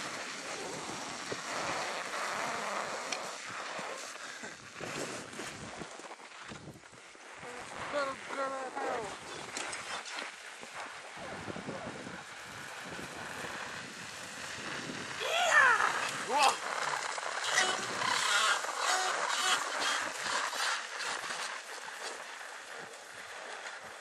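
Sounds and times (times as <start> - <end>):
outdoor noise hiss: 0.0 - 24.0
person calling out: 7.7 - 9.2, 15.2 - 16.7.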